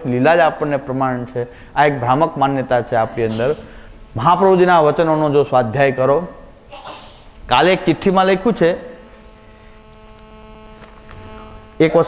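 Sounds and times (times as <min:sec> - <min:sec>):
man speaking: 0:00.0 - 0:06.4, 0:07.5 - 0:09.1, 0:11.8 - 0:12.0
steady electrical hum: 0:00.0 - 0:12.0.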